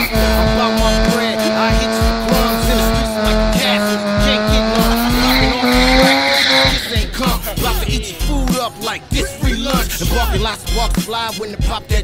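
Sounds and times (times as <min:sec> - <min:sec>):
tyre squeal: 0:00.0 - 0:07.0
engine revving high: 0:00.0 - 0:07.9
hip-hop track with beat: 0:00.0 - 0:12.0.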